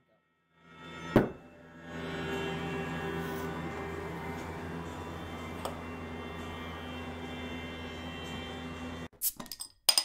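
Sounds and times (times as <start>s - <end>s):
steady low hum: 1.3s - 9.1s.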